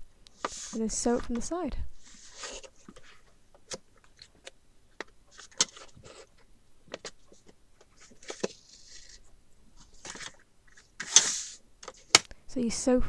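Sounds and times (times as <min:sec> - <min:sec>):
paper rustling and crinkling: 0:02.0 - 0:04.4, 0:05.3 - 0:12.2.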